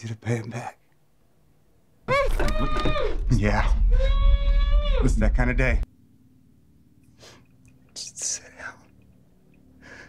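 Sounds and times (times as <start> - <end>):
faint low hum: 3.4 - 10.0
person whispering: 7.9 - 9.0.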